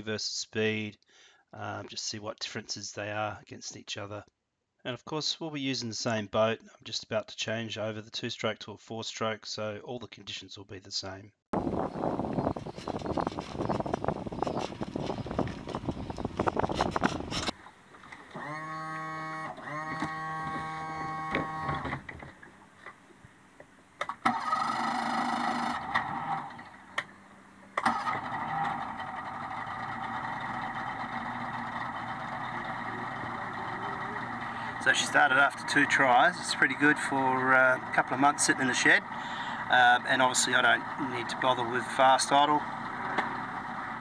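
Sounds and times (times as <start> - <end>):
electric starter cranking: 16.2 - 22.4, 24.0 - 27.1, 27.8 - 44.0
outboard engine idling: 26.7 - 44.0.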